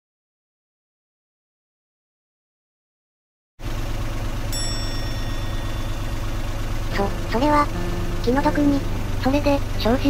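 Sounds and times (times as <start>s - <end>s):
car engine humming: 3.6s - 10.0s
bright chime: 4.5s - 6.9s.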